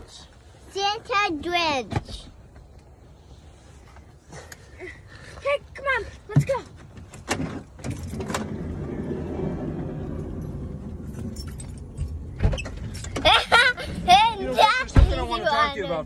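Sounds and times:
car rumble: 3.5s - 16.0s.

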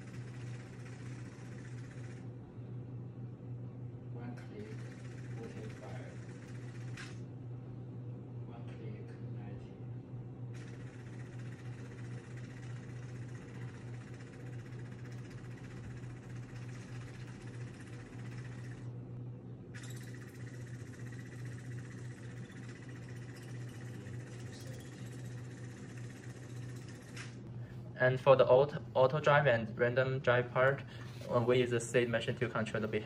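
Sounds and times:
small electric motors humming: 0.0s - 2.4s, 4.4s - 7.3s, 10.6s - 19.0s, 19.7s - 27.4s
motor whir: 10.6s - 18.9s, 19.8s - 27.4s.

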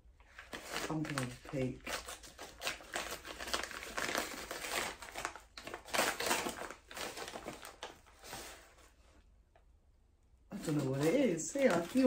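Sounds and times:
paper bag crinkling: 0.3s - 9.0s, 10.5s - 12.0s.

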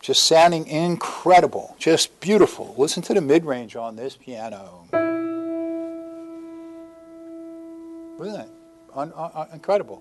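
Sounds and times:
piano note ringing: 4.9s - 10.0s.

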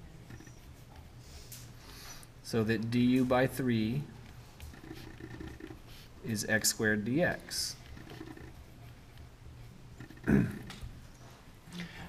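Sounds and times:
low room hum: 0.0s - 12.0s
pen scratching on paper: 4.2s - 6.7s, 7.7s - 9.3s.

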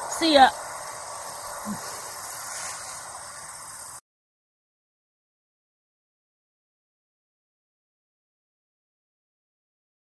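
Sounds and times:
outdoor background hiss: 0.0s - 4.0s.

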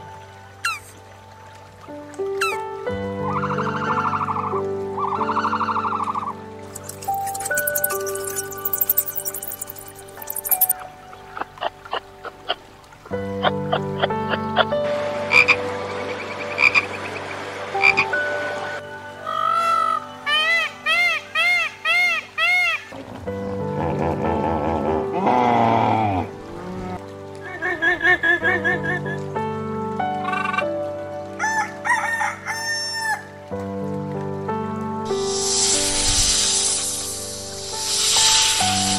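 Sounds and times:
background music: 0.0s - 38.9s
rooster crowing: 31.4s - 33.3s.

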